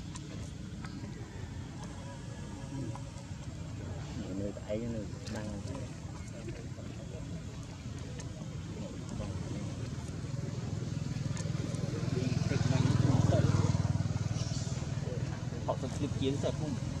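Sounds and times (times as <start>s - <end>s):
vehicle engine passing by: 9.3s - 17.0s.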